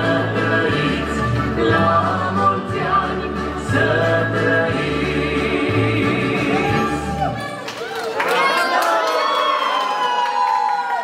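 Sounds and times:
crowd cheering: 6.5 - 11.0.

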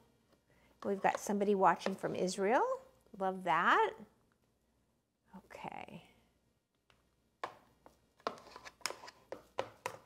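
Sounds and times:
spatula knocking plastic bowl: 9.3 - 10.0.

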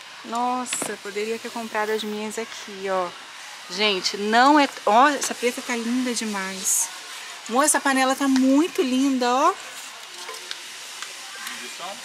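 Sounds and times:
steady hiss: 0.0 - 12.0
faint distant voices: 6.6 - 12.0.

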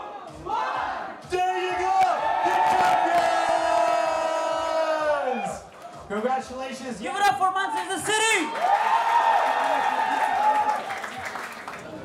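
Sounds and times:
crowd cheering: 0.0 - 6.1, 7.8 - 12.0.

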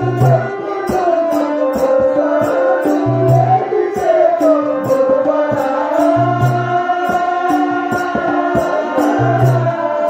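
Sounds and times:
drum beats: 0.0 - 10.0
held accompanying notes: 0.0 - 10.0
person singing: 0.0 - 10.0.

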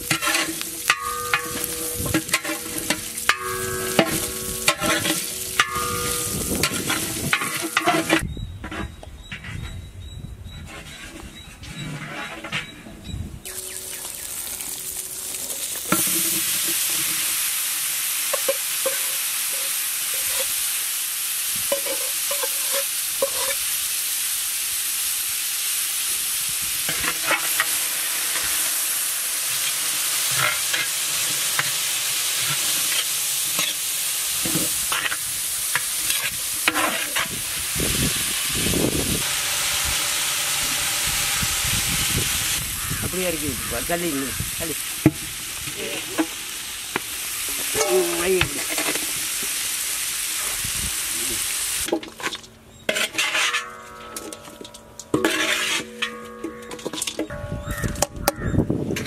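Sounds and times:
loud frying sizzle: 0.0 - 8.3, 13.4 - 59.0
stirring scrapes and knocks: 0.0 - 9.6, 51.9 - 57.3.

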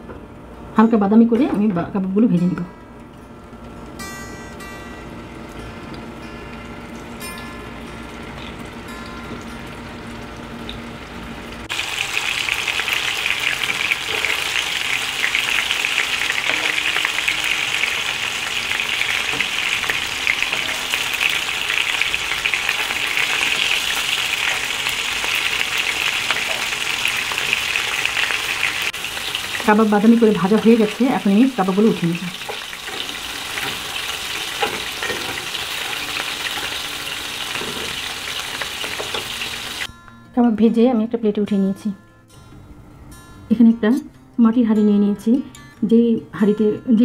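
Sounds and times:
food sizzling in hot oil: 6.5 - 39.9.

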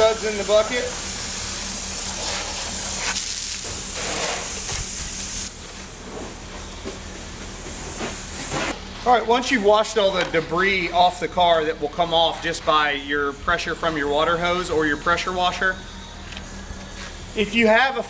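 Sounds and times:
hose nozzle spraying water: 0.0 - 5.5
water spraying over car: 0.0 - 5.6.

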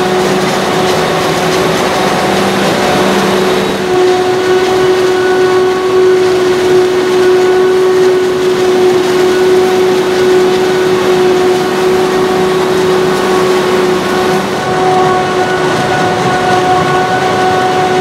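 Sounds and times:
harvester engine and chopping din: 0.0 - 18.0
high mechanical whine: 0.0 - 18.0
tractor engine running: 0.0 - 18.0.

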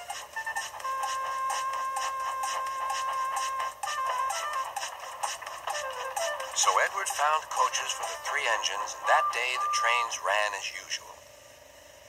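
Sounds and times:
tinny music from tv speaker: 0.0 - 11.2.

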